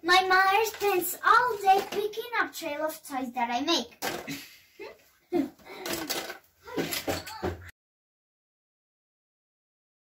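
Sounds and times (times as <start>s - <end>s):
speech: 0.0s - 4.0s
toys clattering: 0.6s - 2.3s, 4.0s - 4.4s, 5.7s - 7.6s.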